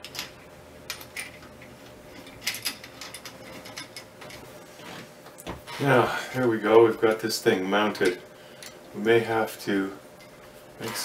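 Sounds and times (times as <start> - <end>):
small metal parts clicking: 0.0 - 4.4.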